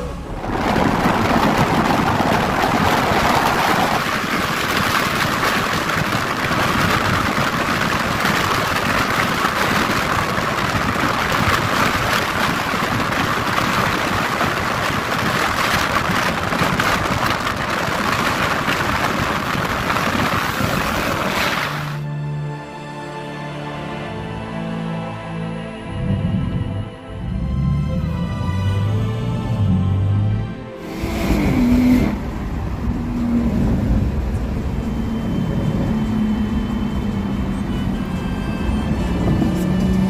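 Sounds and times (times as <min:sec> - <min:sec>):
wind and road noise inside car: 0:00.0 - 0:22.0, 0:30.8 - 0:40.0.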